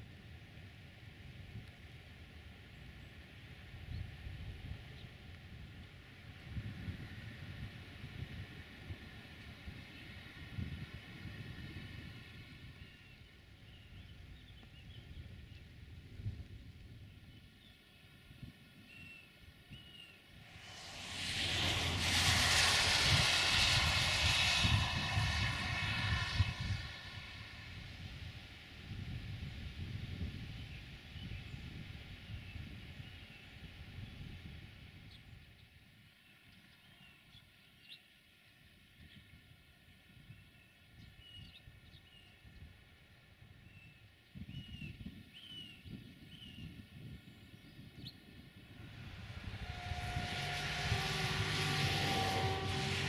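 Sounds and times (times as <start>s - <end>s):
low rumble: 20.3s - 30.0s, 48.2s - 53.0s
vehicle passing on wet road: 20.4s - 28.7s, 48.8s - 53.0s.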